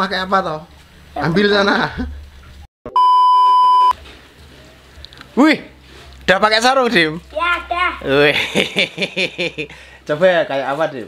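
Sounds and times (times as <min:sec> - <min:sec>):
high electronic beep: 0:02.9 - 0:04.0.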